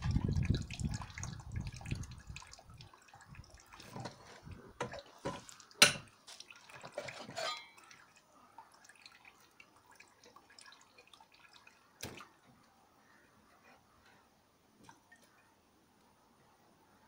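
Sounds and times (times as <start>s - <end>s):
faint drips and ticks: 0.0s - 16.2s
water dripping and squelching: 0.0s - 16.2s.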